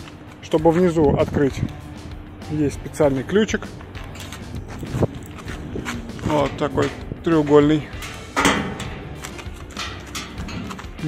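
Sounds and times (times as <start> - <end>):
light handling noise: 4.0 - 11.0.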